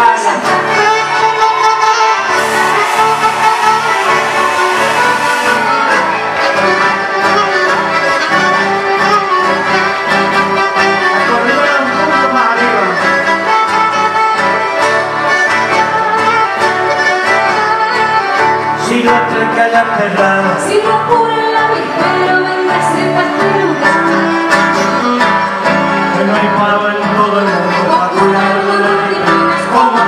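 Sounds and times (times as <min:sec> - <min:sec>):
accordions playing melody: 0:00.0 - 0:19.8, 0:21.3 - 0:30.0
strummed acoustic guitar: 0:00.4 - 0:30.0
pulsing bass line: 0:02.1 - 0:07.9.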